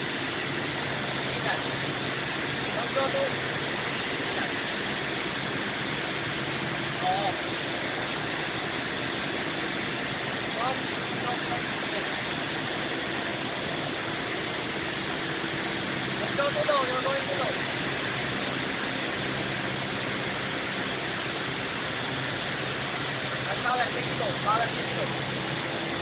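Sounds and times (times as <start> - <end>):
propeller plane engine droning: 0.0 - 26.0.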